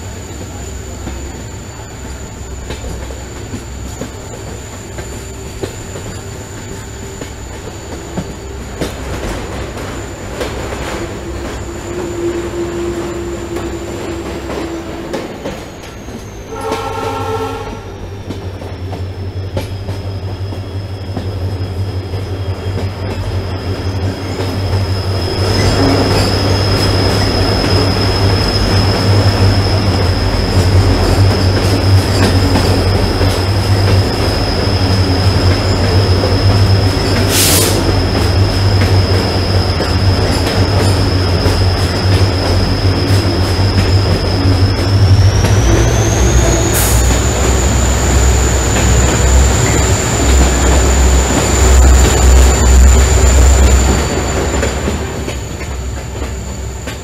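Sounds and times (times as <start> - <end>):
train wheel squeal: 0.0 - 57.0
train wheels rumbling: 0.0 - 57.0
locomotive horn blast: 11.0 - 15.4, 16.5 - 18.1.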